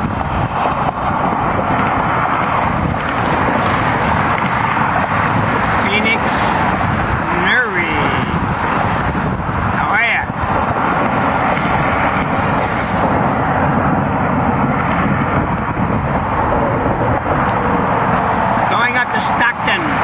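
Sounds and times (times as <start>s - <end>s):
dense road traffic: 0.0s - 20.0s.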